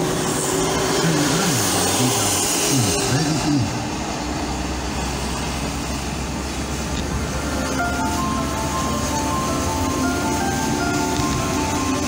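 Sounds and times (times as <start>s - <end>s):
car road and engine rumble: 0.0s - 12.0s
chiming melody: 7.7s - 12.0s.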